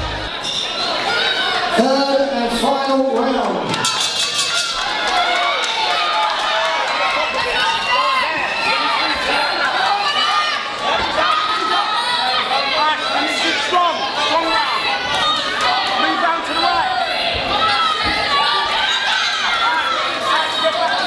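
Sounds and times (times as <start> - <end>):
crowd shouting and cheering: 0.0 - 21.0.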